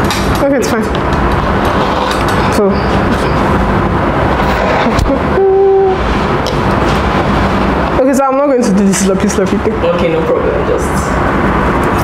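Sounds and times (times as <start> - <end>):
loud low rumbling: 0.8 - 12.0
short hummed tone: 4.4 - 6.3.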